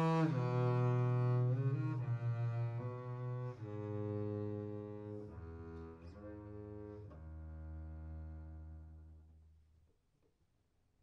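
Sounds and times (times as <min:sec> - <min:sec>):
double bass bowing low note: 0:00.0 - 0:09.3.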